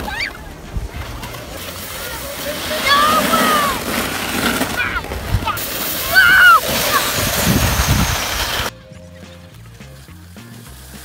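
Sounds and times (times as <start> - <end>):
sled sliding over packed snow: 0.0 - 8.7
child shouting: 2.7 - 3.8, 4.7 - 7.2
background music: 8.7 - 11.0.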